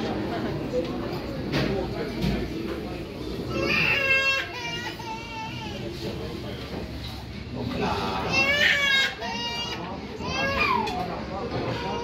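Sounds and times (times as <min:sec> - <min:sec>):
children chattering and calling: 0:00.0 - 0:06.6, 0:07.5 - 0:12.0.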